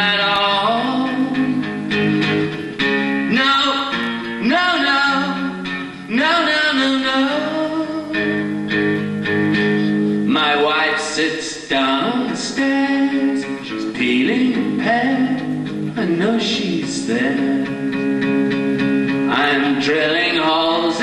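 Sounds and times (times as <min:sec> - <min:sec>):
person singing wordlessly: 0:00.0 - 0:01.8, 0:03.2 - 0:08.3, 0:10.3 - 0:17.8, 0:19.3 - 0:21.0
acoustic guitar strumming chords: 0:00.0 - 0:21.0.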